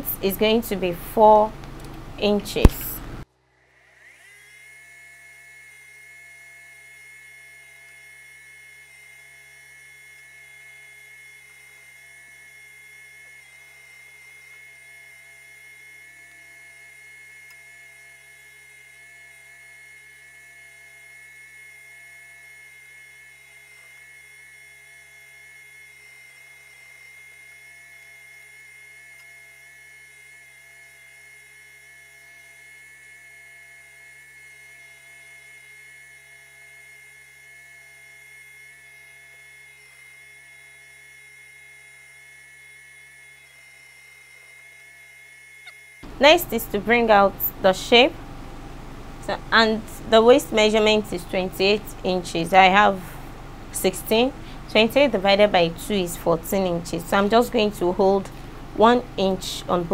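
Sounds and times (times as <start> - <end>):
sewing machine motor whine: 0.0 - 59.9.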